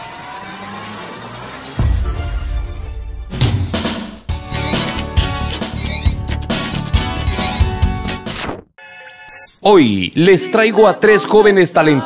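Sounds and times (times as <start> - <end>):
electronic riser sweeping upward: 0.0 - 6.1
heavy bass impact: 1.8 - 7.1.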